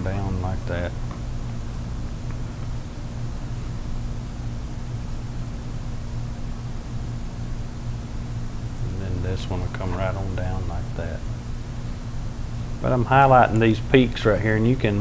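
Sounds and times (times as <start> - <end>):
low hum with faint hiss: 0.0 - 15.0.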